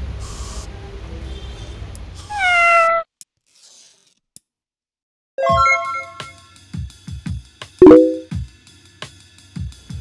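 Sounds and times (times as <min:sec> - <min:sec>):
cat meowing: 0:02.2 - 0:03.1.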